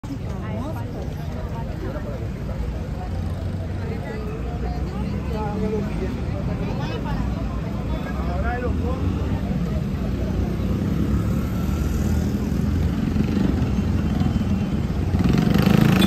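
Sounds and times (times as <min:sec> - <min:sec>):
voices: 0:00.0 - 0:11.4
street traffic: 0:00.0 - 0:16.0
motorcycle engines running: 0:08.8 - 0:16.0.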